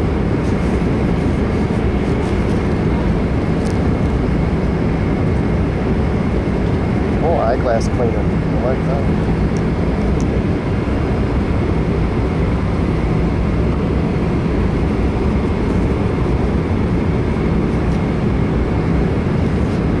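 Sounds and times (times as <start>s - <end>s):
airliner cabin roar: 0.0s - 20.0s.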